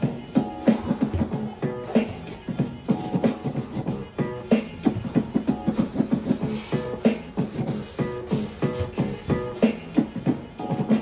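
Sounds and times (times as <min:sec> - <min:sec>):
background music with chord stabs: 0:00.0 - 0:11.0.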